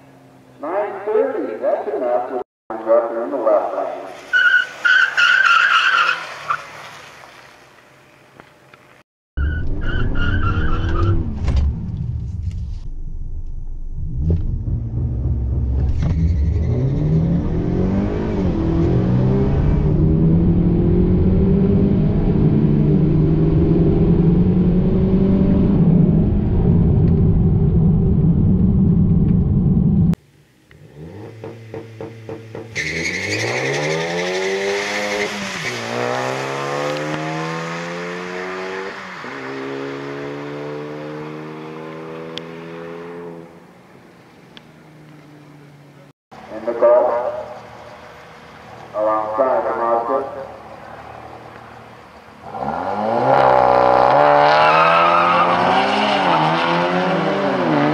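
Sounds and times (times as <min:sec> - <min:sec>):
car engine revving inside cabin: 0:10.9 - 0:30.2
cars accelerating down drag strip: 0:13.2 - 0:30.0, 0:30.7 - 0:43.6, 0:46.5 - 0:57.9.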